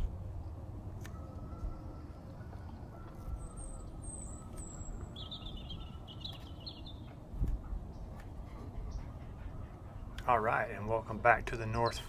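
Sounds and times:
low outdoor background rumble: 0.0 - 12.0
small birds chirping: 2.2 - 10.4, 11.6 - 12.0
birds chattering: 3.4 - 7.2, 7.8 - 12.0.

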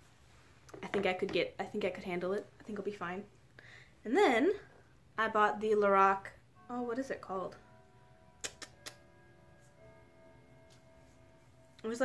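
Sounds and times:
faint sustained tones: 4.5 - 12.0.

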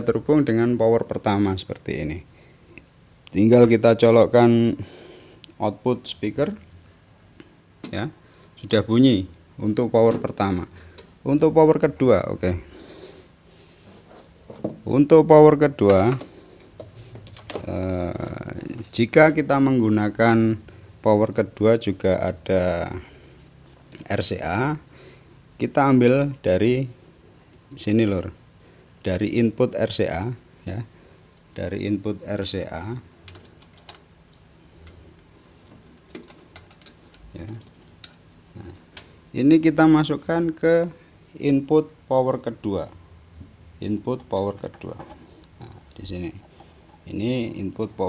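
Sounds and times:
man speaking: 0.0 - 2.3, 3.3 - 4.9, 5.6 - 6.6, 7.8 - 12.7, 14.8 - 16.2, 17.5 - 23.1, 24.0 - 24.9, 25.6 - 27.0, 27.7 - 28.4, 29.0 - 30.9, 31.6 - 33.1, 37.3 - 37.7, 38.5 - 43.0, 43.8 - 48.0
faint room noise: 0.0 - 48.0.

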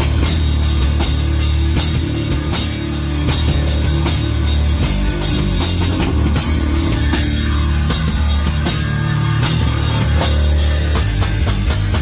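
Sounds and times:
heavy drum and cymbal hits: 0.0 - 12.0
loud rock band playing: 0.0 - 12.0
low bass line: 0.0 - 12.0.

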